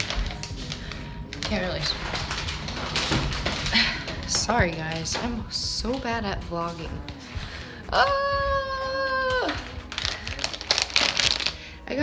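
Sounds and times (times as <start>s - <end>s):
plastic packaging crinkling: 0.0s - 6.1s, 6.7s - 12.0s.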